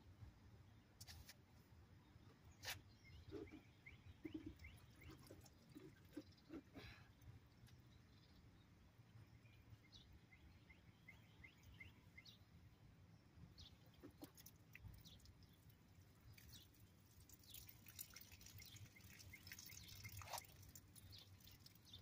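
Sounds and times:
faint bird chirps: 2.0s - 12.8s, 13.5s - 22.0s.

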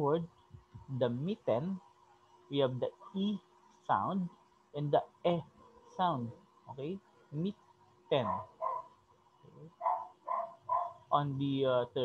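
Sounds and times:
dog barking: 8.2s - 8.9s, 9.8s - 11.0s.

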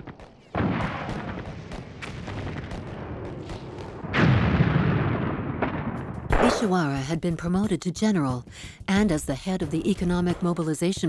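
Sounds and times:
heavy explosion: 0.6s - 6.5s
rifle shots: 5.2s - 6.8s.

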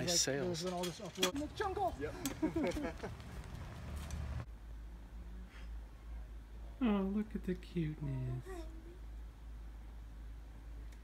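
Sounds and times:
low steady rumble: 3.1s - 11.0s.

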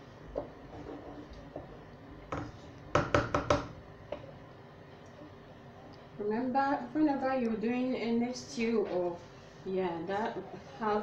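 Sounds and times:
kitchenware knocking: 2.3s - 3.7s.

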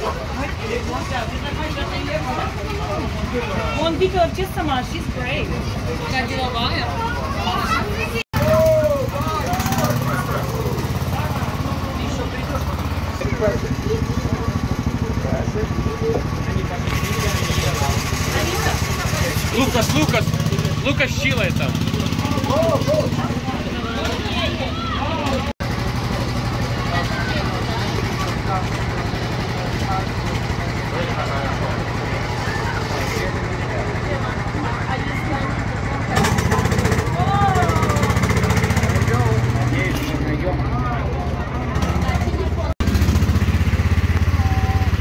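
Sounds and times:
small engine running: 0.0s - 45.0s
voices talking: 0.0s - 45.0s.

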